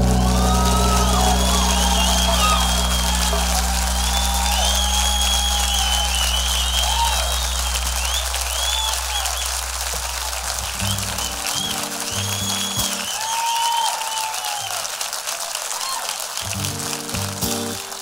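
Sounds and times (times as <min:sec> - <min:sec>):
band sustained chord: 0:00.0 - 0:11.6
audience applauding and cheering: 0:00.0 - 0:18.0
audience whistling: 0:00.0 - 0:18.0.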